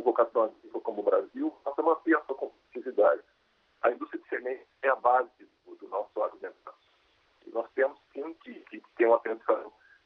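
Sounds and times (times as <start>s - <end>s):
man speaking through video call: 0.0s - 3.2s, 3.8s - 6.7s, 7.4s - 9.8s.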